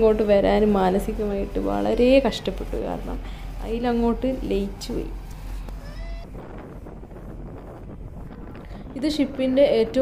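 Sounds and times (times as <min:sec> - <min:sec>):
sea washing along hull: 0:00.0 - 0:10.0
wind buffeting microphone: 0:00.0 - 0:10.0.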